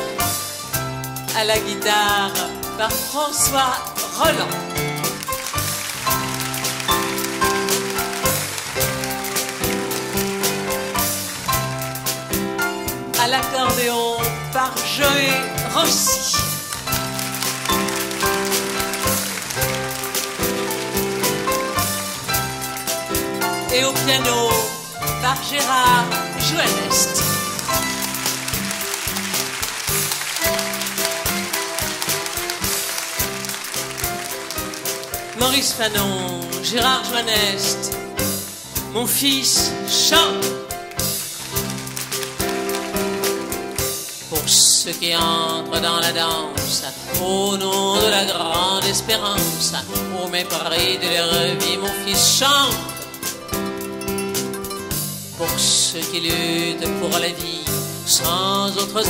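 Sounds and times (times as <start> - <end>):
live band playing instrumental: 0.0 - 59.0.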